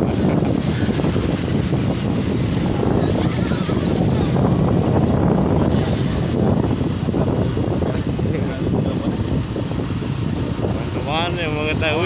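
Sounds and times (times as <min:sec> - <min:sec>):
wind rushing over microphone: 0:00.0 - 0:12.0.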